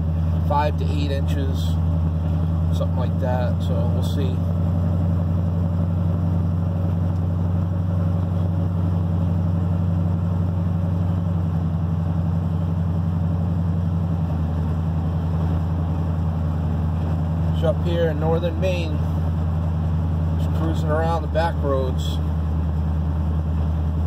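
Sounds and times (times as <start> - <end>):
truck engine cruising: 0.0 - 24.0.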